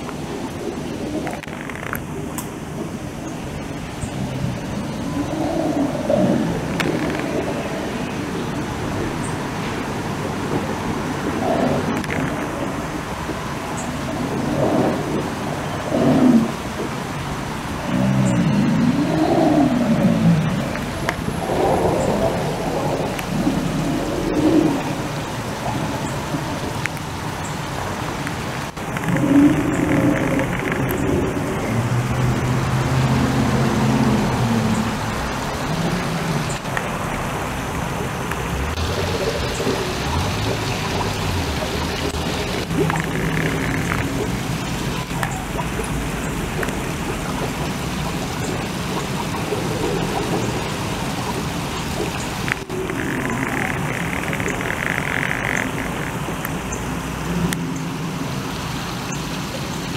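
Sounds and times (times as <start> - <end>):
water falling over rocks: 0.0 - 59.9
low pitched moaning: 17.8 - 25.1.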